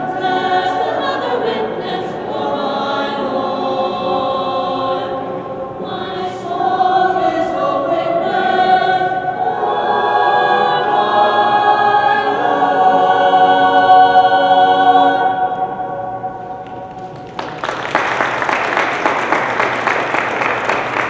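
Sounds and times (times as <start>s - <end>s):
choir singing in parts: 0.0s - 17.0s.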